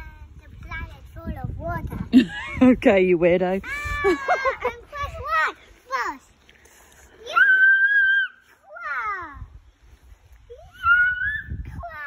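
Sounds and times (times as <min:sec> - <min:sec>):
rope swing creaking: 0:03.6 - 0:11.9.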